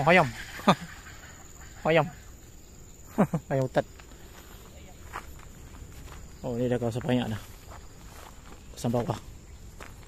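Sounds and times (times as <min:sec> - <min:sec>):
footsteps through grass: 0:03.8 - 0:10.0.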